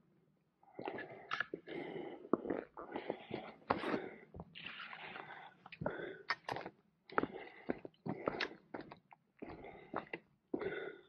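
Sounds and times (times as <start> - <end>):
person breathing: 0.8 - 6.4, 7.1 - 8.7, 9.4 - 11.0.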